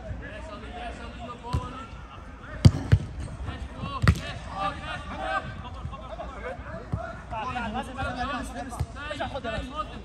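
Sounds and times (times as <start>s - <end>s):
players' voices: 0.0s - 10.0s
football kick thuds: 2.6s - 4.4s.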